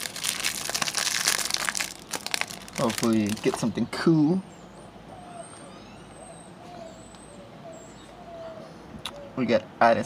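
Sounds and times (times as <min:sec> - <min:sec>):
plastic wrapper crinkling: 0:00.0 - 0:03.7.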